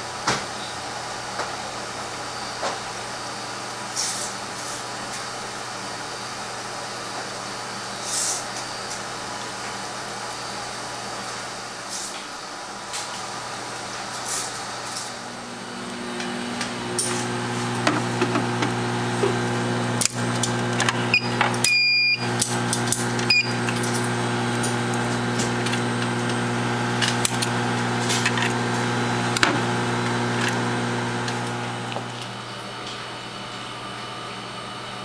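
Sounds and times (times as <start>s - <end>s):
electrical hum of equipment: 0.1s - 35.0s
short electronic beeps: 21.1s - 22.3s, 23.3s - 23.6s.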